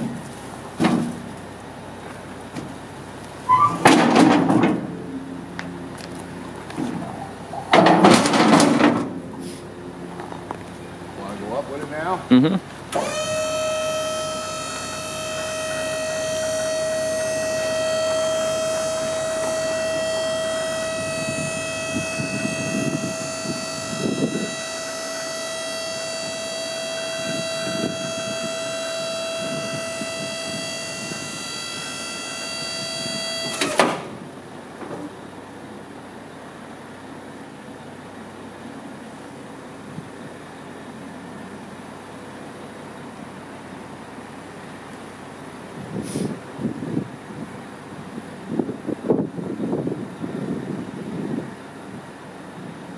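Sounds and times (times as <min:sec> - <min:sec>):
hydraulic pump whining: 0:12.9 - 0:34.2.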